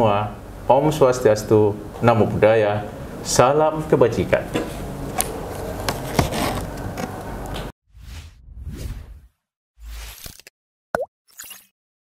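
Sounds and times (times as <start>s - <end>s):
whoosh: 7.9s - 10.1s.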